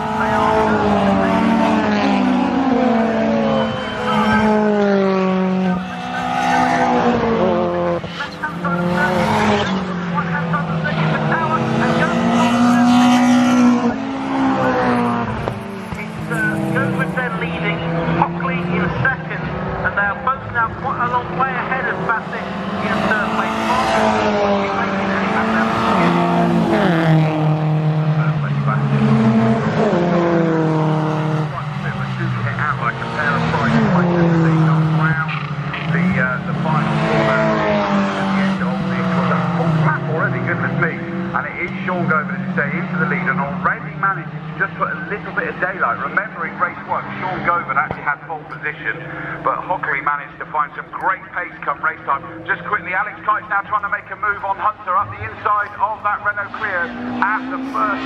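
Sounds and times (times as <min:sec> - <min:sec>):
race car engines running hard: 0:00.0 - 0:58.0.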